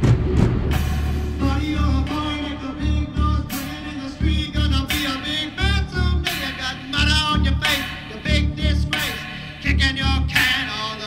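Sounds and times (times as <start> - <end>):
marching band playing rock: 0.0 - 3.9
hard drum hit: 0.0 - 7.9.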